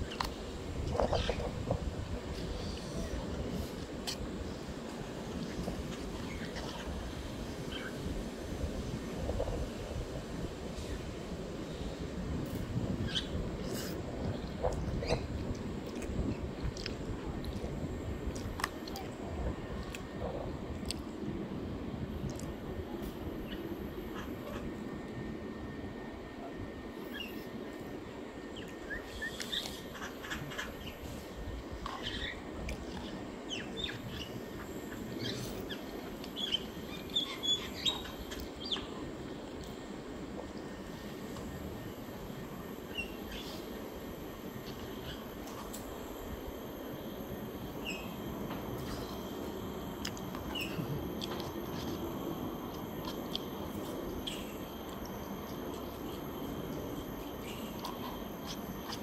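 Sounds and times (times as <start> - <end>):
steady low rumble: 0.0 - 59.0
high bird chirps: 50.3 - 52.0.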